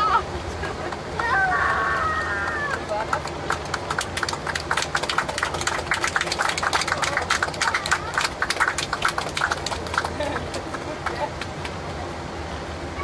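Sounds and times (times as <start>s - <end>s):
low engine drone: 0.0s - 13.0s.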